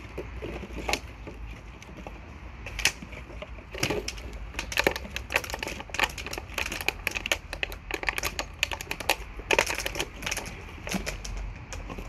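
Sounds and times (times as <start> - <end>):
plastic bottles crinkling and clattering: 0.0 - 12.0.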